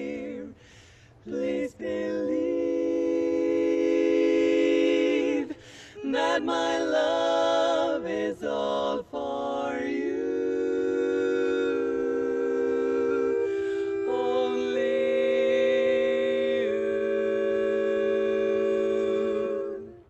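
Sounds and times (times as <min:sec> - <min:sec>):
women singing a cappella harmony: 0:00.0 - 0:20.0.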